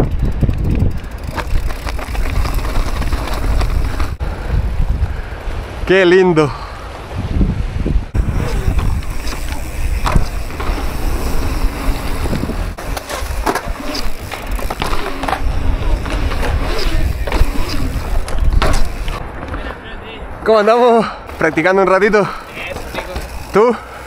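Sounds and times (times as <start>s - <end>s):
bike knocks and rattles: 0.0s - 4.2s, 8.2s - 19.7s, 22.4s - 23.6s
wind rumbling on microphone: 0.0s - 5.9s, 6.8s - 20.4s.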